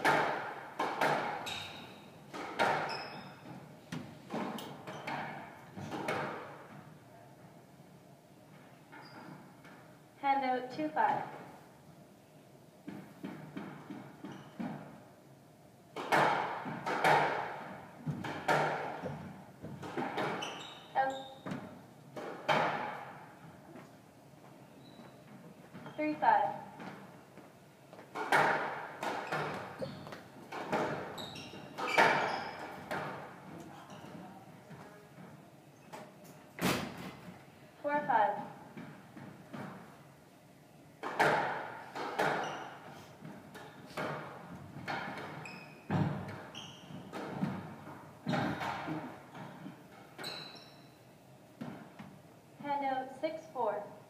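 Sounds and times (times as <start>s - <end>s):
squash ball hits echoing: 0.0s - 2.9s, 16.0s - 20.4s
sneakers squeaking on wooden floor: 1.0s - 6.5s, 8.6s - 9.9s, 12.9s - 15.0s, 18.0s - 21.8s, 23.7s - 36.2s, 41.9s - 52.0s.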